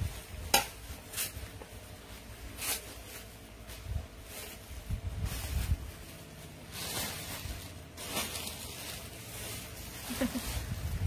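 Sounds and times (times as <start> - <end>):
fabric rustle: 0.0 - 11.0.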